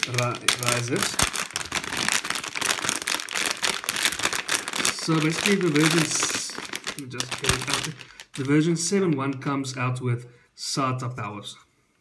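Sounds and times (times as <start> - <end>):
plastic bag crinkling: 0.0 - 9.8.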